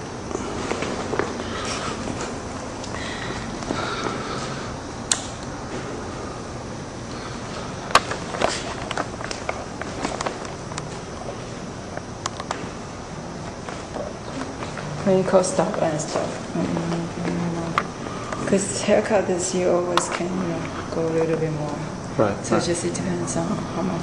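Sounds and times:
low steady background noise: 0.0 - 24.0.

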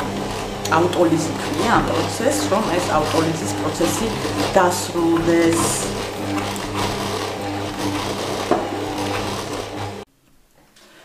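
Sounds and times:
stand mixer motor humming: 0.0 - 10.1.

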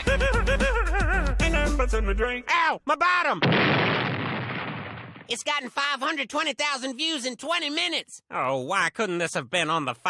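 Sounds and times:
cartoon song: 0.0 - 2.5
loud blast: 3.4 - 5.3.

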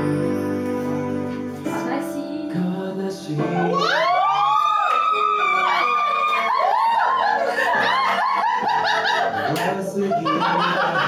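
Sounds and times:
group of people laughing: 5.3 - 11.0.

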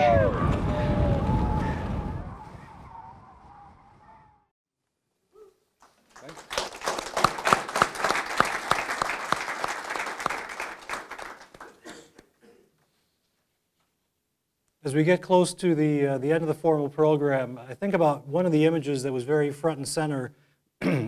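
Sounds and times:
audience applauding: 5.8 - 11.9.

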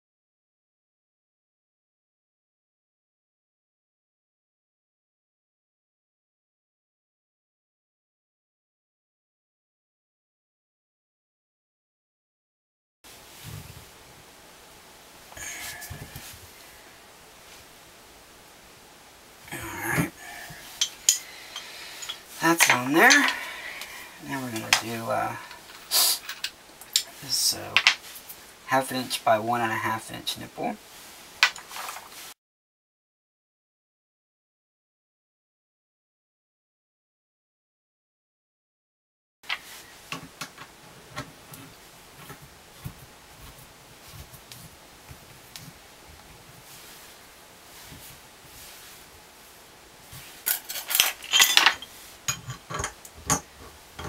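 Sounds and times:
metal pipe fittings clicking: 20.8 - 23.4
pipe wrench handling noise: 20.8 - 23.4, 50.5 - 54.0.

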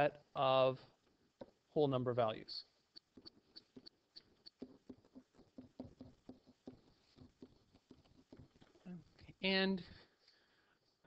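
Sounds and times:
pen writing: 3.0 - 8.8.

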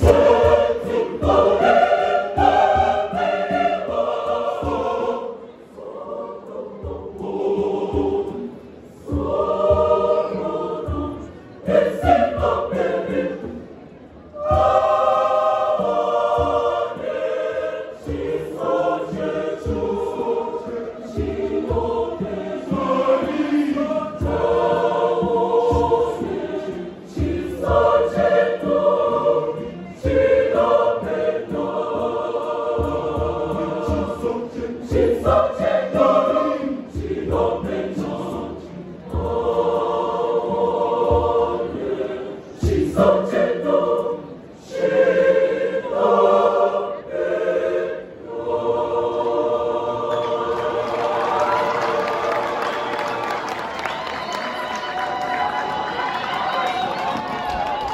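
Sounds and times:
choir singing in harmony: 0.0 - 57.9.

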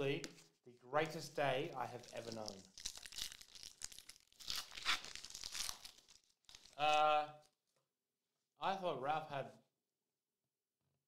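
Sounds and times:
foil wrapper crinkling: 1.7 - 6.9
foil pack ripping: 2.0 - 6.8.

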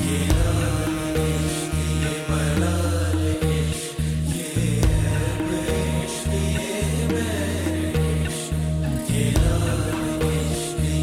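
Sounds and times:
music with deep held notes: 0.0 - 11.0.

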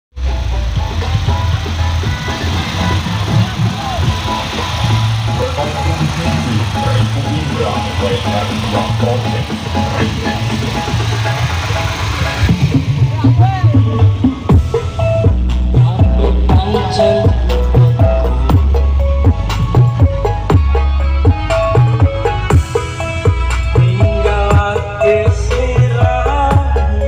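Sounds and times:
dance music with heavy bass: 0.7 - 27.0
voices: 0.9 - 14.6, 15.7 - 18.5.

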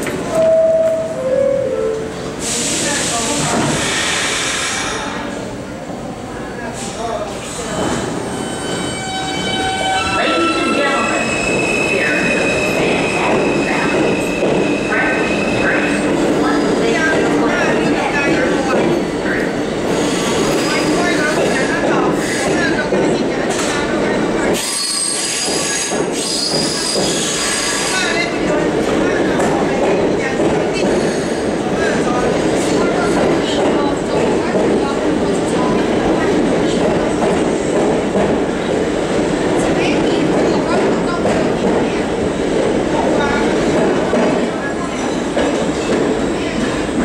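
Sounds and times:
train wheels rumbling and squealing: 0.0 - 5.5, 6.8 - 47.0
air brake hiss: 2.4 - 5.2.

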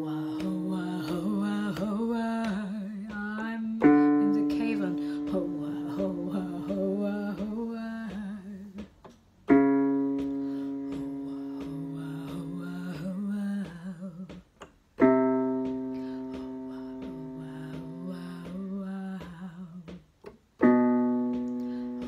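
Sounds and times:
woman singing warm-up phrase: 0.0 - 8.8, 10.1 - 14.4, 15.5 - 20.0
keyboard chords: 3.8 - 7.1, 9.5 - 12.6, 15.0 - 18.0, 20.6 - 22.0.

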